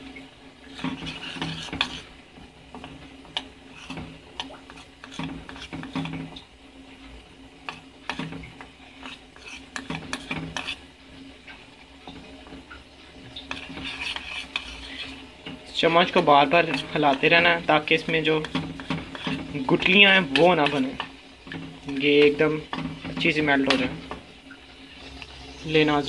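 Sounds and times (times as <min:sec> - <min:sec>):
spoon scraping metal bowl: 0:00.6 - 0:06.4, 0:07.6 - 0:11.0, 0:13.2 - 0:24.1.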